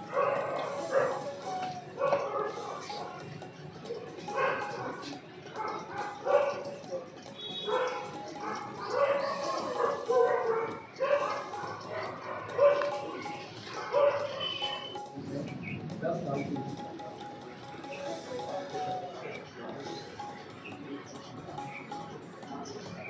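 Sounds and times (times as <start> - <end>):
dog barking: 0.0 - 3.0, 4.3 - 14.8
people's voices: 0.0 - 23.0.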